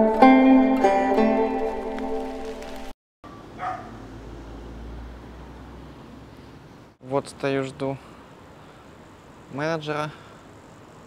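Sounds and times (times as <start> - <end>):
plucked string music: 0.0 - 2.9.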